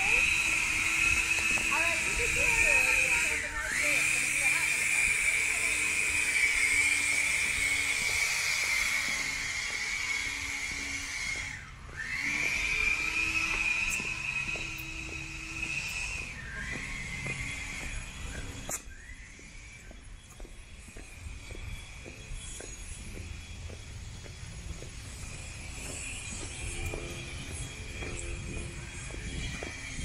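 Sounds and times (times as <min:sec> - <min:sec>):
hiss: 0:00.0 - 0:19.9
high-pitched motor whine: 0:00.0 - 0:30.0.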